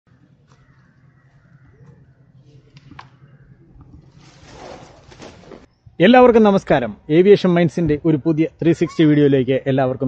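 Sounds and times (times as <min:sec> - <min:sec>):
faint bird calls: 0:00.1 - 0:04.4.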